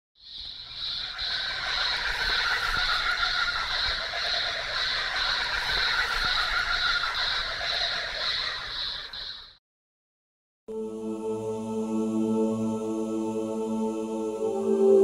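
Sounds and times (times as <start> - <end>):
fainter lower insect calls: 0.2 - 7.4.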